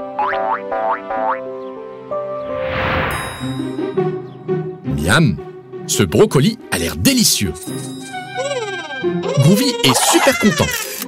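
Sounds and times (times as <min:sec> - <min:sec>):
cartoon background music: 0:00.0 - 0:11.0
rising pitch-slide sound effects: 0:02.4 - 0:03.5.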